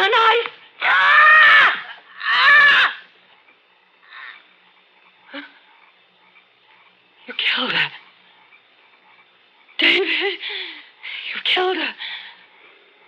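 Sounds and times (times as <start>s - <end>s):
woman screaming: 0.8s - 3.0s.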